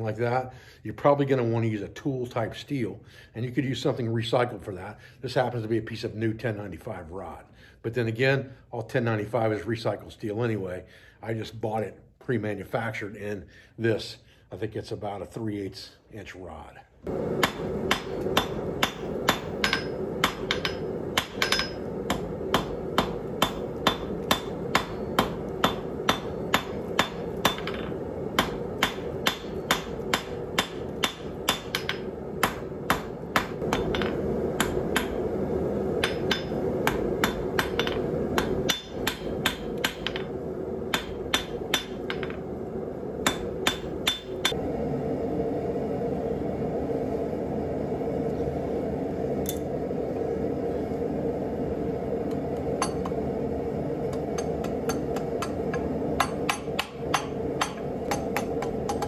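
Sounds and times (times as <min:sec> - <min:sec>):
low hum: 0:17.0 - 0:59.0
hammer striking metal on anvil: 0:17.3 - 0:35.3, 0:35.9 - 0:42.4, 0:43.2 - 0:44.6, 0:52.8 - 0:53.2, 0:54.1 - 0:59.0.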